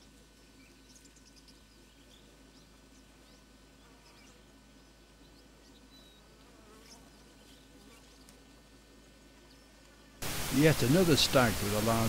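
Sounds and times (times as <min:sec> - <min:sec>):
faint outdoor ambience: 0:00.0 - 0:12.0
faint high chirps: 0:00.4 - 0:08.4.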